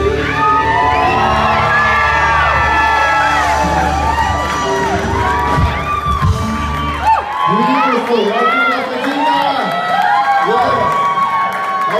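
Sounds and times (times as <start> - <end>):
singers holding long notes: 0.0 - 6.0
live band playing: 0.0 - 8.6
crowd cheering and whooping: 0.0 - 11.9.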